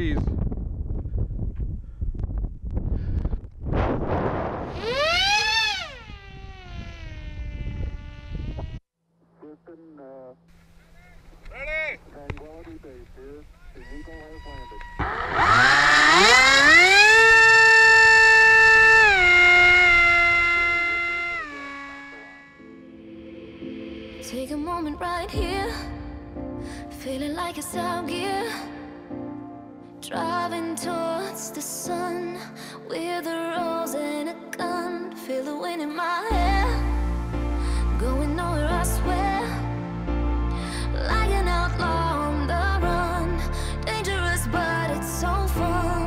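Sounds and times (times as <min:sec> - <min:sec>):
wind rushing over camera: 0:00.0 - 0:08.8
electric motor whine: 0:04.7 - 0:08.8, 0:13.9 - 0:22.8.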